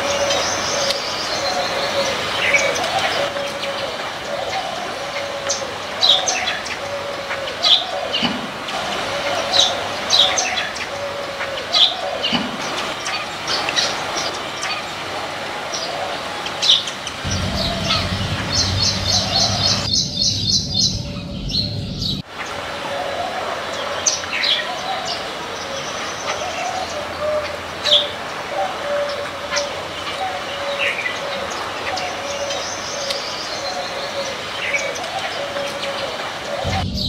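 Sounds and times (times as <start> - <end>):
small birds chirping: 16.5 - 22.2
low rumble: 17.2 - 22.2, 36.6 - 37.0.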